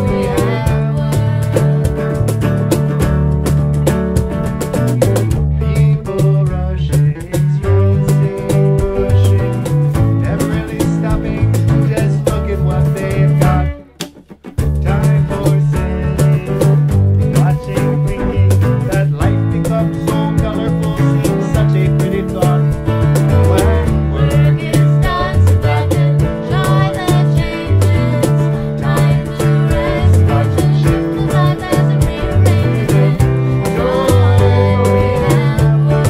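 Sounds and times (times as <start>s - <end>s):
country band on fiddle and guitars: 0.0s - 14.0s, 14.8s - 36.0s.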